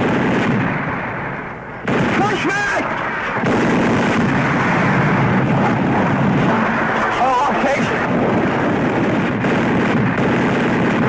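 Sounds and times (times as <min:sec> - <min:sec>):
artillery fire and explosions: 0:00.0 - 0:11.0.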